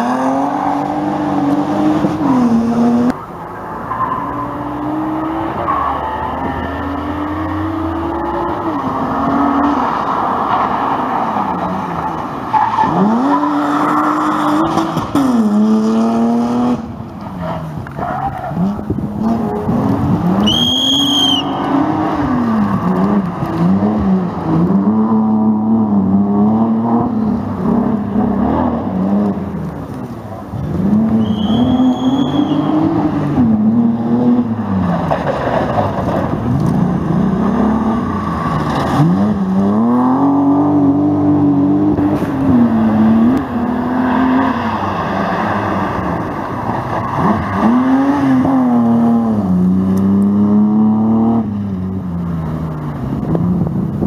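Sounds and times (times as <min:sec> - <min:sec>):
rally car engines revving: 0:00.0 - 0:54.0
brief high-pitched squeals: 0:31.2 - 0:32.8.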